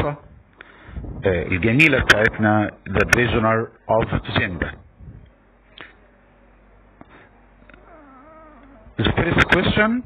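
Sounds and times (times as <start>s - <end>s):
low room noise: 0.0s - 10.0s
faint wavering cry: 7.7s - 9.0s.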